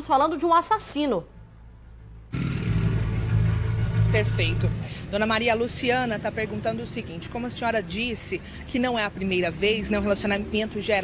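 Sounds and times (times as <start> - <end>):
street traffic: 0.0 - 11.0
vehicle engine running: 2.3 - 10.9.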